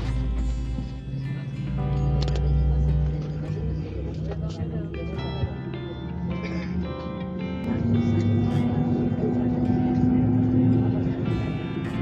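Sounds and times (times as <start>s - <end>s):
music playing: 0.0s - 12.0s
voices: 0.0s - 12.0s.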